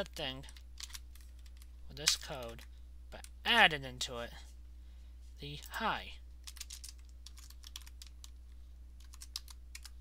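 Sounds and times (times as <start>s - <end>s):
steady low hum: 0.0s - 10.0s
typing on computer keyboard: 6.4s - 8.4s, 9.0s - 10.0s.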